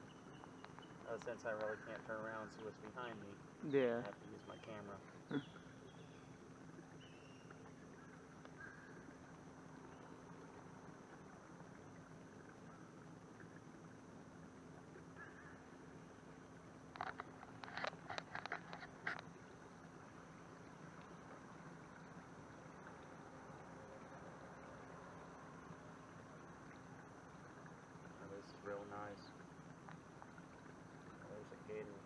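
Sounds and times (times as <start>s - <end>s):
faint steady background noise: 0.0s - 32.0s.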